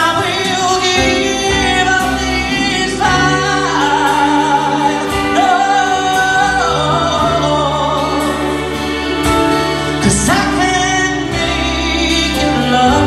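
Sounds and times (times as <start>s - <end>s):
live band playing: 0.0s - 13.0s
man singing long notes: 0.0s - 13.0s.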